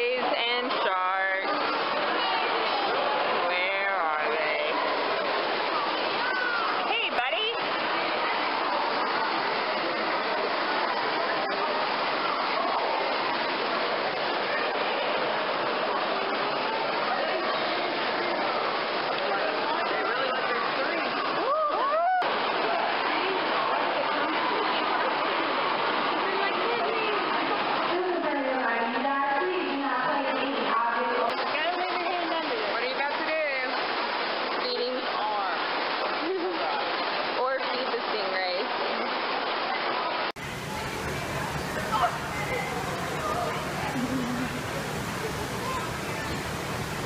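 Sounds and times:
people talking: 0.0s - 33.8s, 34.5s - 47.0s
water rushing: 0.0s - 47.0s.

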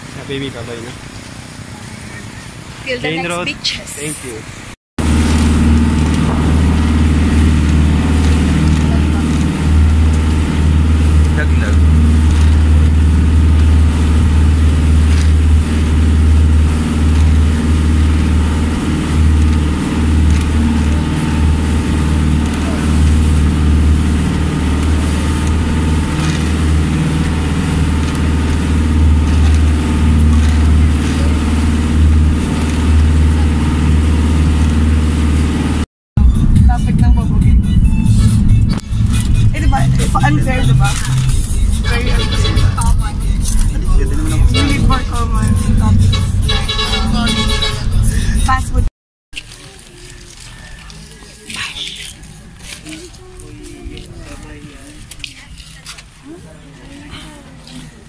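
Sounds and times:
water rushing past hull: 0.0s - 35.8s, 36.6s - 48.2s
boat engine running: 0.0s - 58.0s
road noise inside car: 0.0s - 58.0s.

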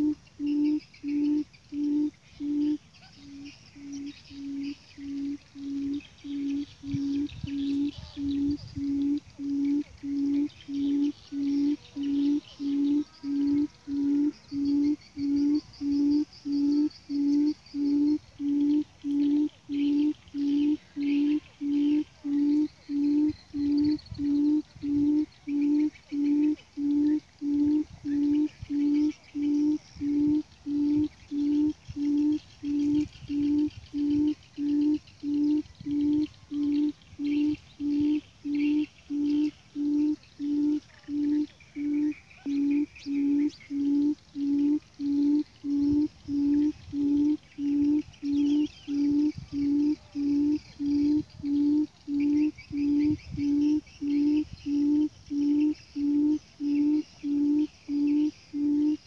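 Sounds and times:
bird low hooting call: 0.0s - 59.0s
small birds chirping: 0.0s - 59.0s.

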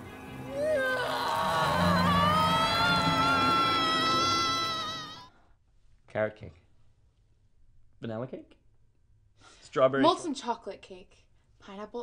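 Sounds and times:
woman screaming high-pitched: 0.5s - 5.3s.

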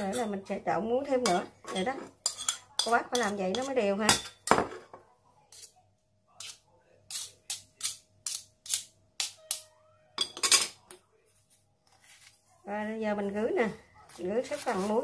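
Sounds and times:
spoons clinking on steel bowl: 0.0s - 0.4s, 1.2s - 4.6s.

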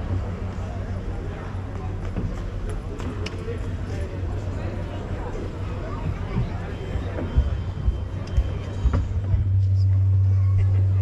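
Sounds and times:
loud low drone from sound system: 6.2s - 11.0s.

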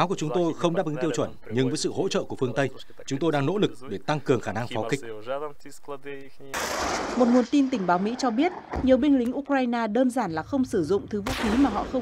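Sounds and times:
man talking: 0.0s - 6.6s.

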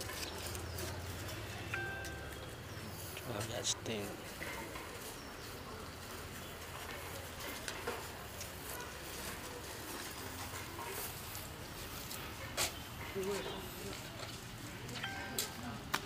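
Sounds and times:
outdoor background noise: 0.0s - 16.0s.

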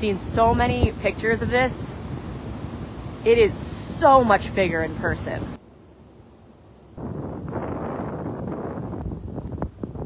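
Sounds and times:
wind buffeting microphone: 0.0s - 5.6s, 6.8s - 10.0s.

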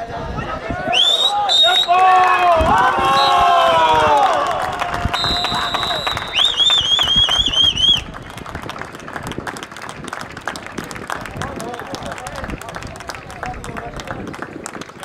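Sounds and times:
players shouting: 0.0s - 6.7s
referee whistle blasts: 0.9s - 2.0s, 3.0s - 3.7s, 5.1s - 8.1s.

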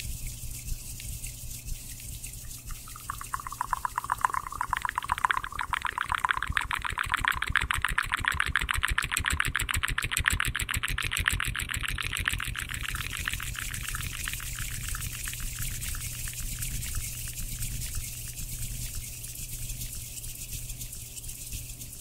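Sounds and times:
wet mouth clicks: 2.4s - 15.7s.

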